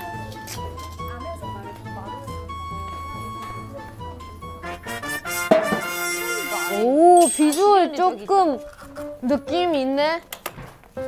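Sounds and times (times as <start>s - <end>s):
background music with low beat: 0.0s - 7.4s
bright jingle: 6.0s - 8.7s.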